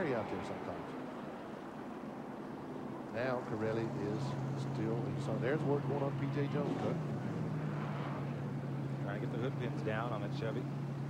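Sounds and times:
truck engines rolling by: 0.0s - 11.0s.

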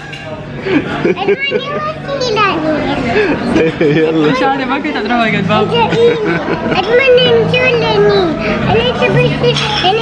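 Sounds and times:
other voices talking: 0.0s - 10.0s
girl talking excitedly: 1.2s - 3.0s, 5.6s - 10.0s.

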